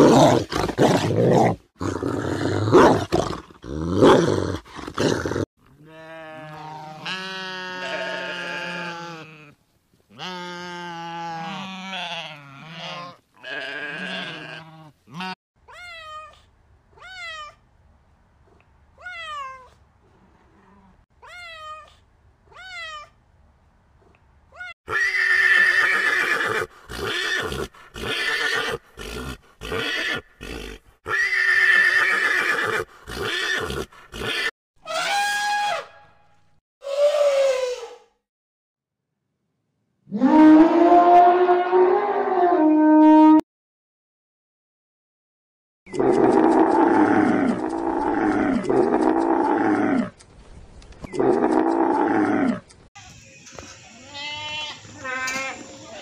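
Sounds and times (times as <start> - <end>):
horses neighing: 24.9 - 34.5.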